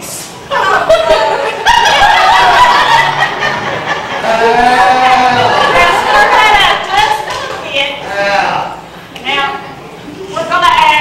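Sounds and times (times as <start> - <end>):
women laughing: 0.5 - 7.3.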